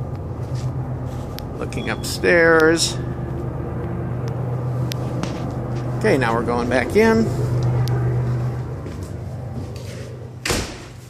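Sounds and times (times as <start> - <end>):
distant traffic rumble: 0.0 - 11.0.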